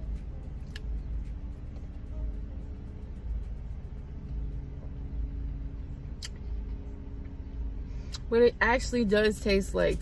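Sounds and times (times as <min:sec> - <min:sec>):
car idling from inside: 0:00.0 - 0:10.0.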